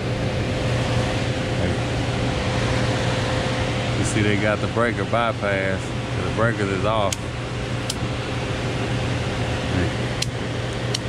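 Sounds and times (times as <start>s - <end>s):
air handler blower running: 0.0s - 11.0s.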